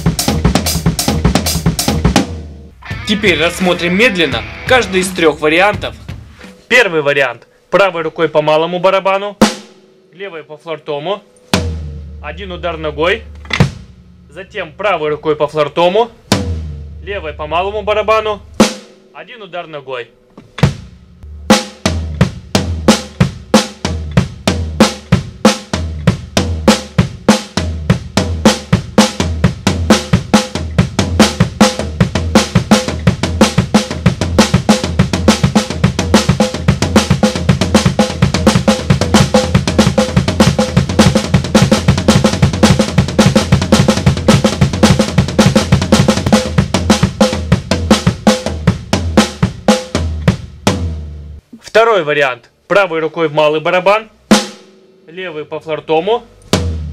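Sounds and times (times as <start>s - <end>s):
drum kit linear pattern: 0.0s - 7.3s, 8.3s - 51.9s, 54.2s - 56.9s.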